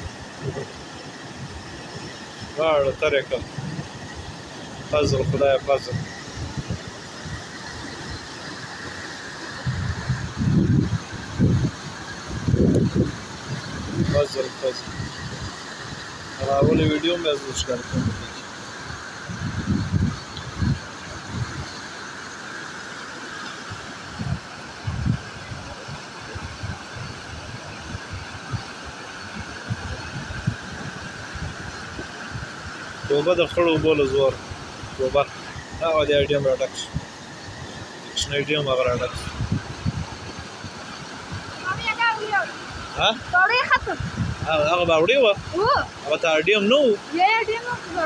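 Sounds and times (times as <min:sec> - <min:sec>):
wind buffeting microphone: 0:00.0 - 0:21.8, 0:23.7 - 0:46.1
flood water rushing: 0:00.0 - 0:48.0.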